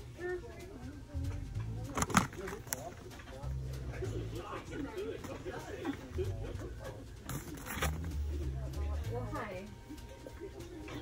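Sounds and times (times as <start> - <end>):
plastic blister packaging crinkling: 1.9 - 3.2.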